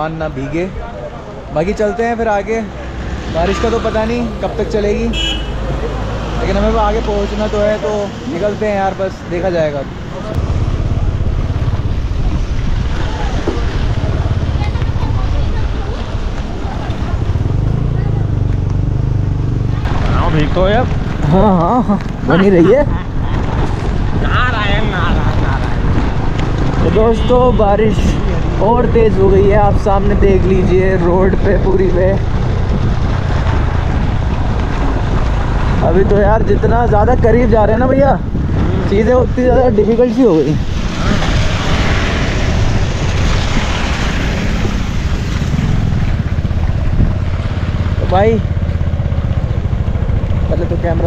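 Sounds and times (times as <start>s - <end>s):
road noise: 0.0s - 51.0s
wind buffeting microphone: 9.8s - 51.0s
motorcycle engine running: 10.3s - 39.1s, 42.2s - 51.0s.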